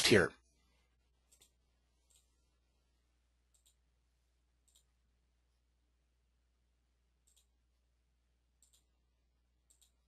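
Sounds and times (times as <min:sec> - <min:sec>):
faint mouse clicks: 0:01.3 - 0:02.3, 0:03.5 - 0:03.8, 0:04.6 - 0:05.0, 0:07.2 - 0:07.6, 0:08.6 - 0:08.9, 0:09.6 - 0:10.0.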